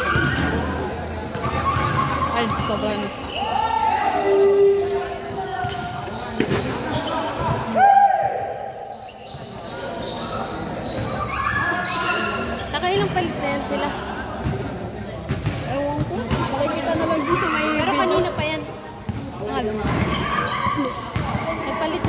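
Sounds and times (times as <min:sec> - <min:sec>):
sneakers squeaking on floor: 0:00.0 - 0:22.0.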